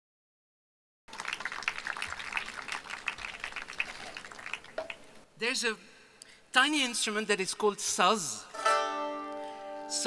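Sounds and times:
audience clapping: 1.1 - 5.2.

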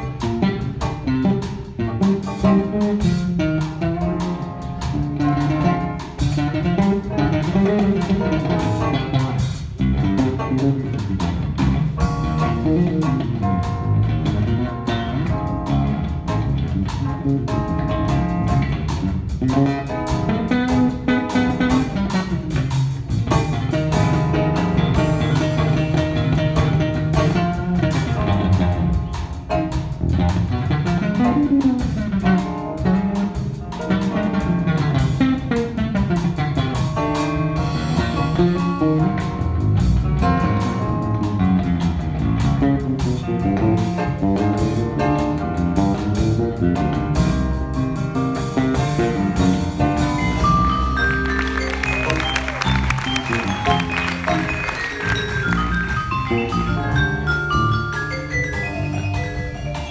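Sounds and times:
bass line: 0.0 - 59.9
drum kit keeping time: 0.0 - 59.9
guitar solo: 50.6 - 57.3.

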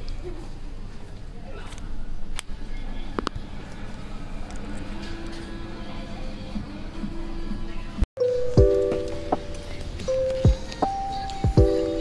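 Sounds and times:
faint voices: 0.0 - 8.0, 9.0 - 12.0.

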